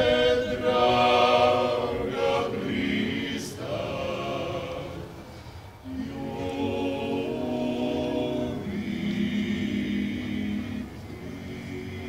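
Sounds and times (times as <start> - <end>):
men singing in close harmony: 0.0 - 12.0.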